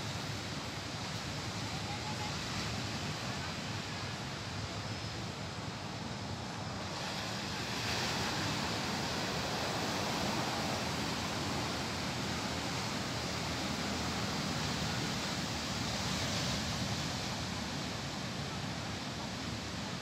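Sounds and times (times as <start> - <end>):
surf washing onto sandy beach: 6.4 - 20.0.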